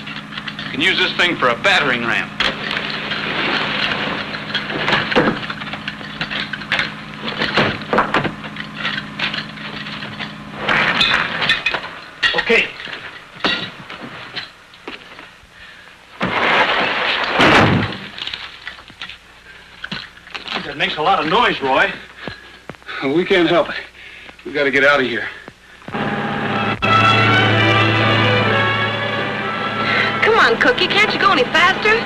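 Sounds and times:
low steady hum: 0.0s - 32.0s
loud crash: 9.6s - 13.8s, 16.2s - 18.4s, 26.0s - 30.2s.

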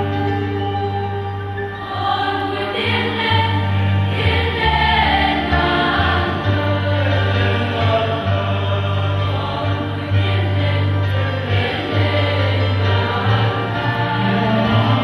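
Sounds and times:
choir singing a hymn: 0.0s - 15.0s
low held accompaniment notes: 0.0s - 15.0s.

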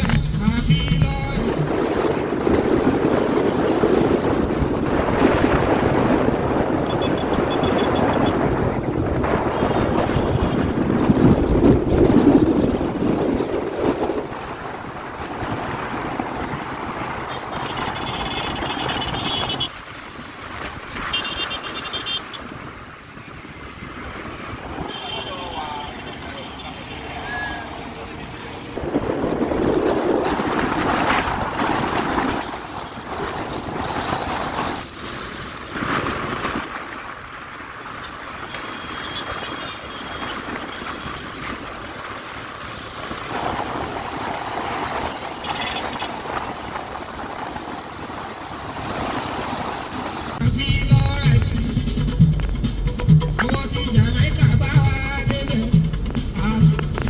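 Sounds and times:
passing vehicles: 0.0s - 57.0s
road and engine noise: 0.0s - 57.0s
indistinct voices: 24.6s - 29.2s.

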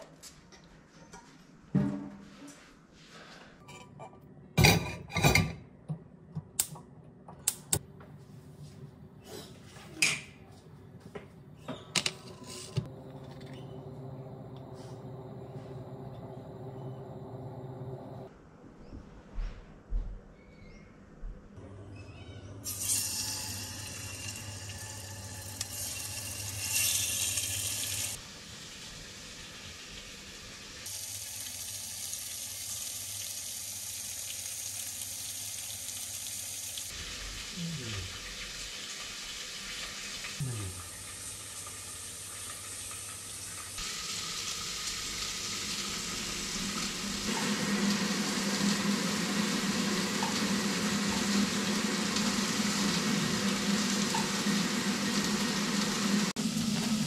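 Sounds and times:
water running from a tap: 22.6s - 57.0s.

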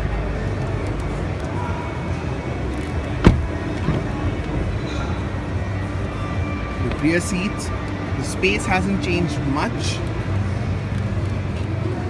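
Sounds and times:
music playing: 0.0s - 12.0s
car door latch click: 2.8s - 4.2s.

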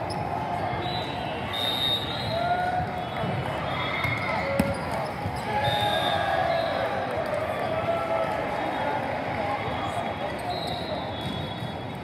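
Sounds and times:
murmur of crowd voices: 0.0s - 12.0s
sneaker squeaks on court: 4.0s - 5.3s.

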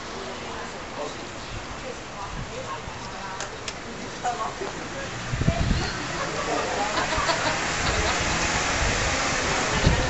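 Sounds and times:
group of people talking: 0.0s - 10.0s
people laughing: 5.8s - 8.5s.

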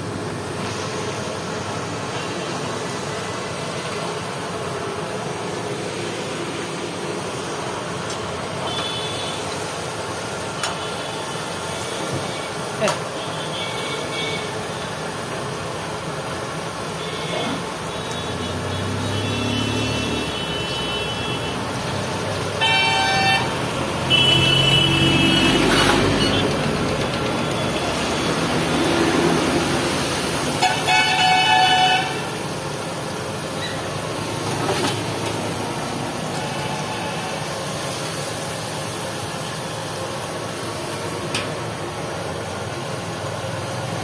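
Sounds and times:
food deep-frying in oil: 0.0s - 19.5s, 20.4s - 44.0s
street traffic hum: 0.0s - 44.0s.

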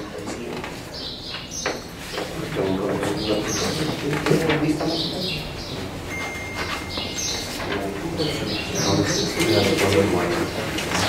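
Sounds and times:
people talking quietly: 0.0s - 11.0s
paper rustling: 0.2s - 5.2s, 5.8s - 11.0s.

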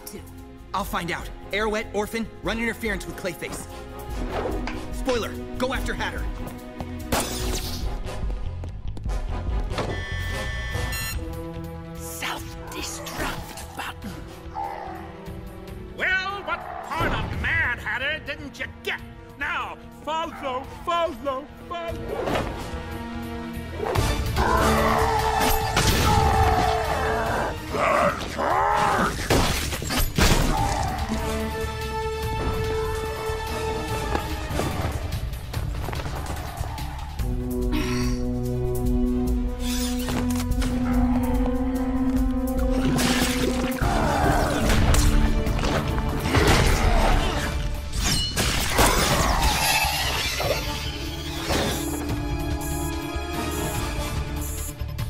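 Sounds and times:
action background music: 0.0s - 55.0s.

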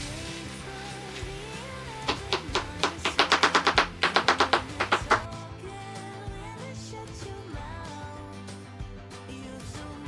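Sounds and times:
background music: 0.0s - 10.0s.

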